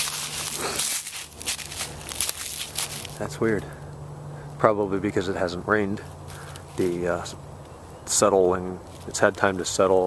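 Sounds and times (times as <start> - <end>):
footsteps on dry leaves: 0.0 - 4.6, 5.9 - 10.0.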